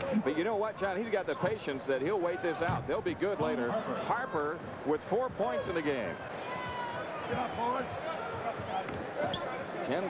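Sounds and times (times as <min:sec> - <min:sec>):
arena crowd hum: 0:00.0 - 0:10.0.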